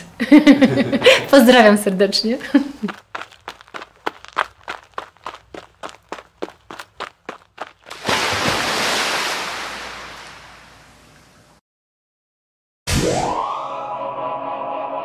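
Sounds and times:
running footsteps: 2.4 - 8.0.

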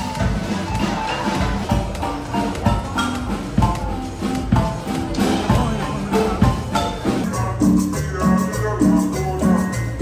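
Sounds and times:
marimba band playing: 0.0 - 10.0.

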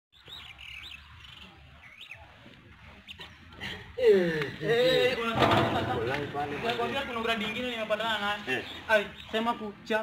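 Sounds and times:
birds chirping: 0.1 - 10.0.

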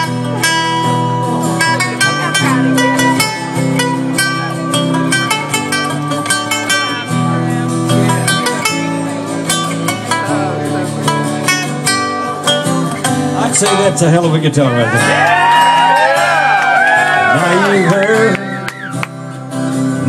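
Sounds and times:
electric guitar picked lead: 0.0 - 13.9
strummed acoustic guitar chords: 0.0 - 20.0.

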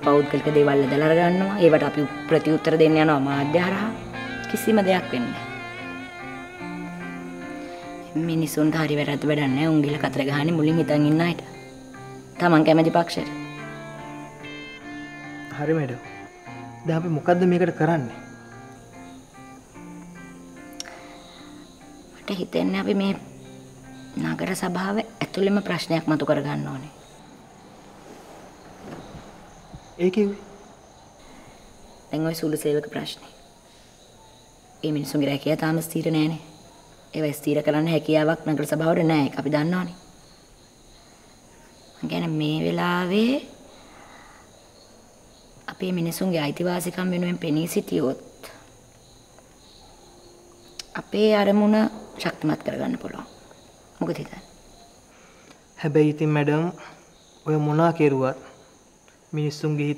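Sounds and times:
soft background music: 0.0 - 55.1
crickets chirring: 0.0 - 59.9.

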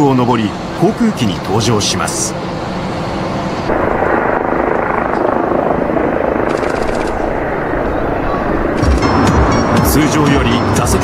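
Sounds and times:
jet engines rushing at takeoff: 0.0 - 11.0
voices: 7.5 - 8.8.

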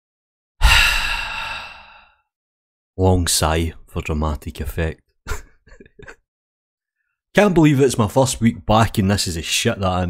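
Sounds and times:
man sighing: 0.6 - 2.2.

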